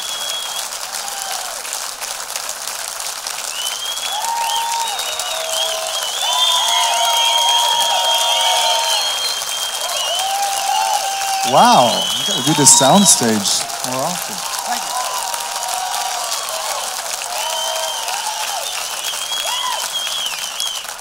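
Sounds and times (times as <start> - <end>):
audience cheering: 0.0 - 2.3, 3.2 - 21.0
audience applauding: 0.0 - 21.0.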